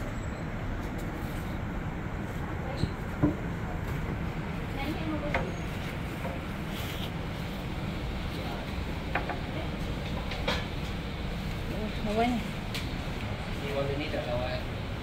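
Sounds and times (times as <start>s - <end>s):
gas burner rumble and hiss: 0.0s - 15.0s.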